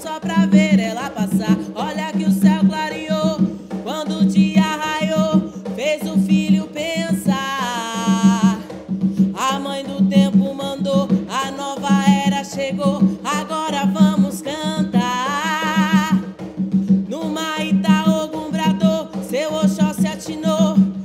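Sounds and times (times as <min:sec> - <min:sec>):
hand drum strokes: 0:00.0 - 0:21.0
woman singing: 0:00.0 - 0:21.0.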